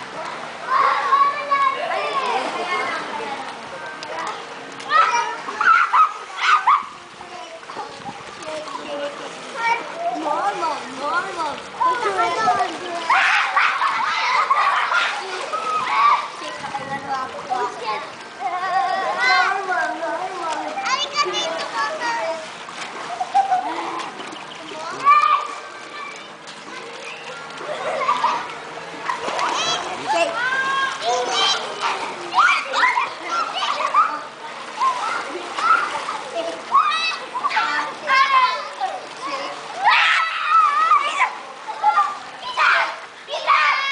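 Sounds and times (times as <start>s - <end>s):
children calling: 0.0s - 43.9s
water splashing in pool: 0.0s - 43.9s.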